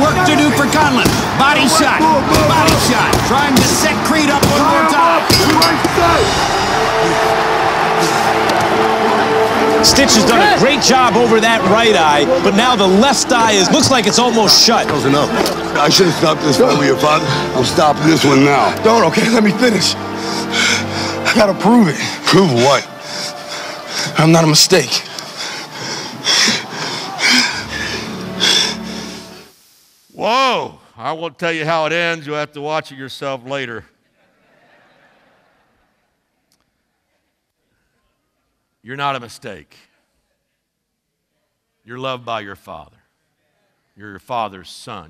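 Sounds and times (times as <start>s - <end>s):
commentator's voice: 0.0s - 6.3s, 9.8s - 20.0s
man breathing heavily: 20.0s - 21.2s, 22.8s - 24.2s, 25.0s - 29.5s.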